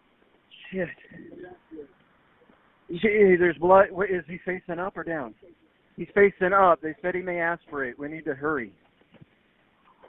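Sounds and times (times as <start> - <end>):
faint muffled murmuring: 0.5 - 2.7, 5.0 - 9.0
man swearing over phone line: 0.6 - 2.0.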